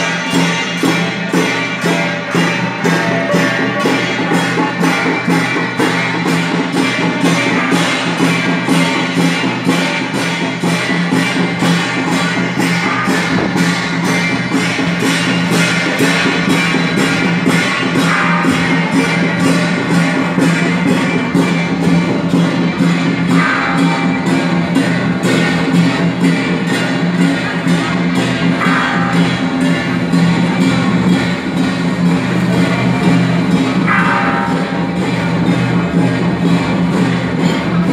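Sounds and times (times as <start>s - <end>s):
hand cymbals crashing: 0.0s - 37.9s.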